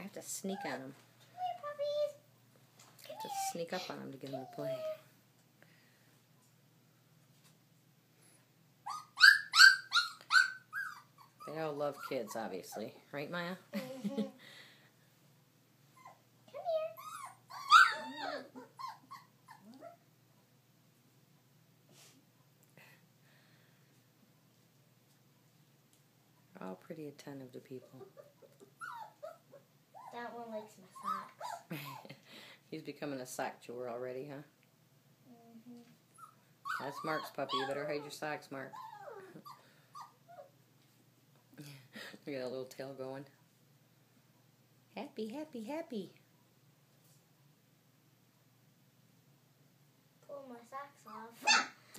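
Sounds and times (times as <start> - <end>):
puppies whining and yelping: 8.8 - 12.2, 15.9 - 20.0, 28.2 - 30.2, 30.9 - 32.0, 36.1 - 38.1, 38.7 - 40.6.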